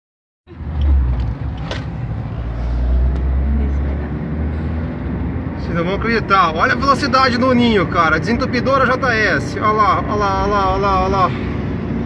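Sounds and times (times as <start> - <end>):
car engine and road noise drone: 0.5 - 12.0.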